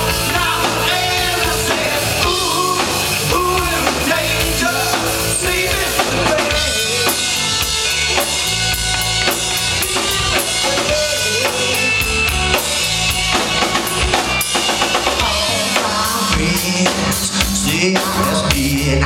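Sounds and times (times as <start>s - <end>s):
drum kit beat: 0.0s - 19.0s
live rock band: 0.0s - 19.0s.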